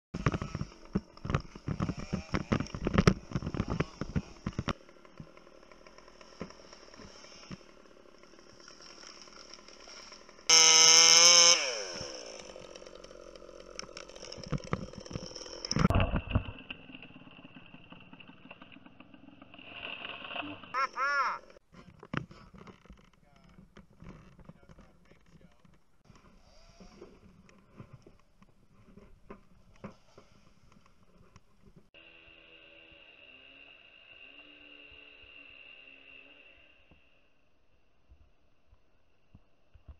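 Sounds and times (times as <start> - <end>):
chainsaw revving: 0.2 - 21.6, 26.0 - 27.3, 32.0 - 37.2.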